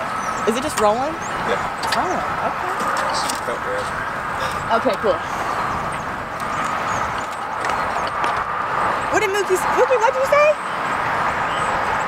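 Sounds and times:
outdoor background noise: 0:00.0 - 0:12.0
faint voices: 0:00.4 - 0:06.2.

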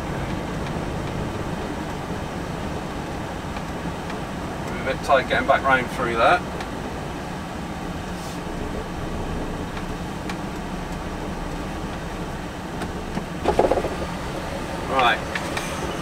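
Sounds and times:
truck diesel engine rumbling: 0:00.0 - 0:16.0.

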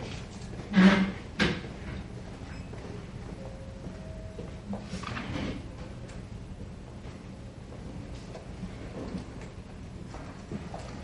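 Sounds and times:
steady room noise: 0:00.0 - 0:11.0.

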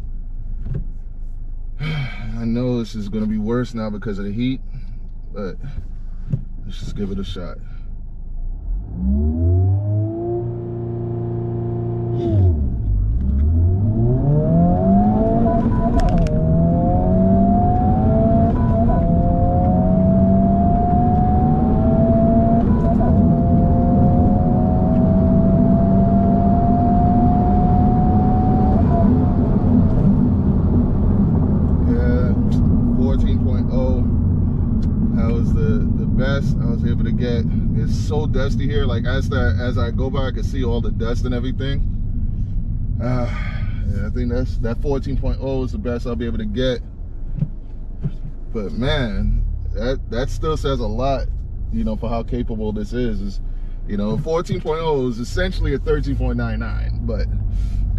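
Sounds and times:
car engine revving from inside cabin: 0:08.5 - 0:39.3
gear upshifts: 0:08.7 - 0:49.3.

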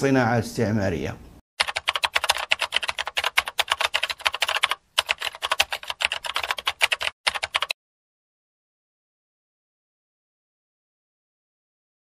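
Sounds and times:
keyboard typing clicks: 0:01.6 - 0:07.8.

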